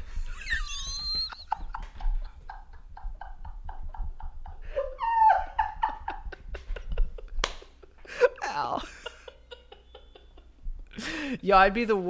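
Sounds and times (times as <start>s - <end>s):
men laughing hard: 0.0s - 11.3s
high squealing laugh: 0.1s - 2.1s, 4.8s - 5.8s.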